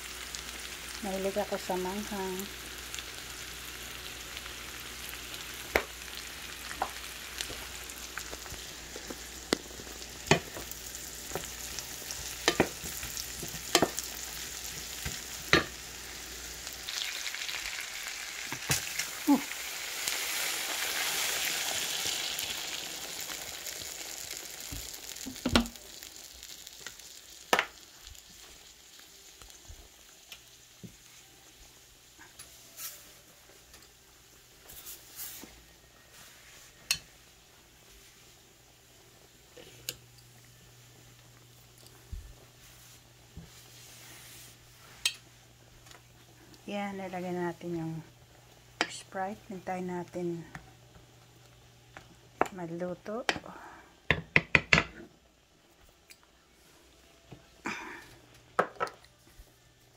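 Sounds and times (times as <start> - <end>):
loud sizzle and foaming bubbles: 0.0 - 53.8
shrimp frying in a pan: 0.0 - 56.6
wooden spoon knocking on pan: 10.3 - 10.7, 12.4 - 12.8, 25.2 - 25.8, 54.1 - 55.0.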